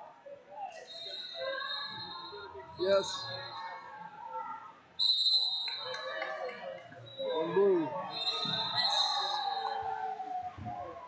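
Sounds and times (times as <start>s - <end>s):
voices in a hall: 0.0s - 11.0s.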